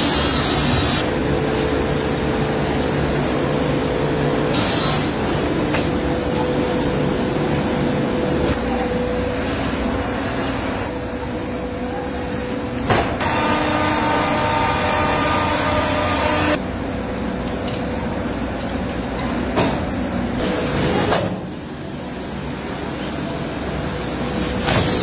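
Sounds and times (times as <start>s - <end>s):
industrial machinery hum: 0.0s - 25.0s
machine whining tones: 13.2s - 16.6s.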